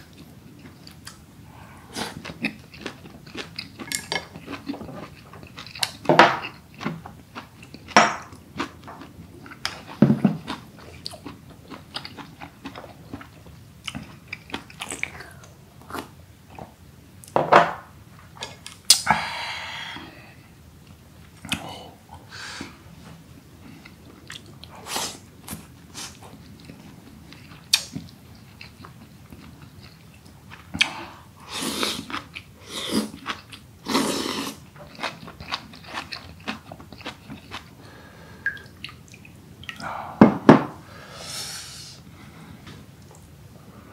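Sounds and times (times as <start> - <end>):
chewing with wet mouth smacks: 2.0 - 16.1, 34.9 - 37.7
wet crunchy chewing: 31.8 - 37.7.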